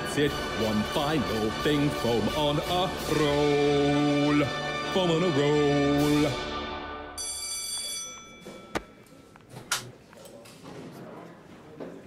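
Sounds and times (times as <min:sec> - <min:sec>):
high bell-like ring: 0:07.2 - 0:09.2.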